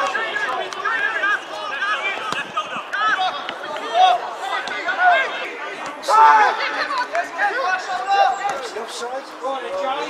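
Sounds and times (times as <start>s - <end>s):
loud shout: 0.0s - 8.8s
voices shouting and calling out: 0.0s - 10.0s.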